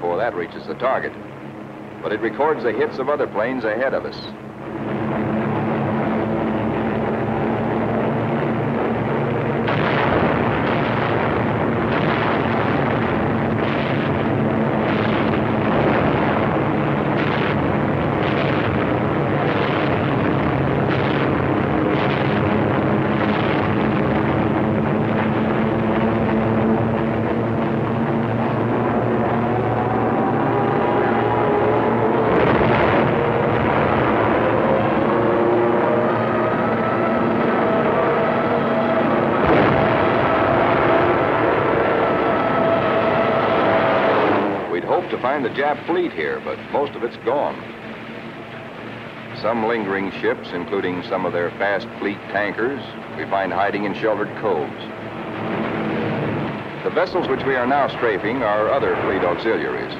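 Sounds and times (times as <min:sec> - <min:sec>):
aircraft engine roar: 0:00.0 - 0:59.9
rising tones: 0:01.0 - 0:50.5.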